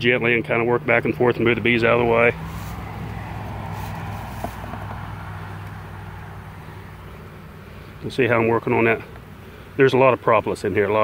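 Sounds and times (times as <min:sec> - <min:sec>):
honey bees humming: 0:00.5 - 0:11.0.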